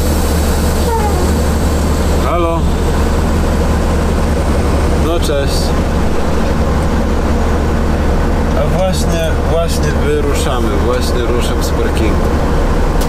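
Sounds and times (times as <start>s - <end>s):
diesel engine droning: 0.0s - 13.0s.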